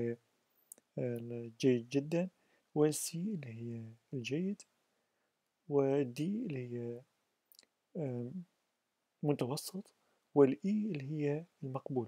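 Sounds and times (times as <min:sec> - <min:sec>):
man's voice: 0:01.0 - 0:04.6, 0:05.7 - 0:07.0, 0:08.0 - 0:08.5, 0:09.2 - 0:12.0.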